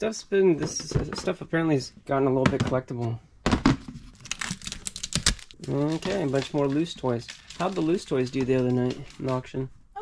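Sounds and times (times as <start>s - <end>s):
plastic bags crackling: 4.1s - 9.7s.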